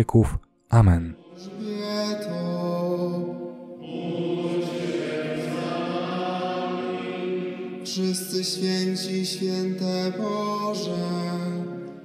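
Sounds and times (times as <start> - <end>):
slow sung chant: 1.2 - 12.0.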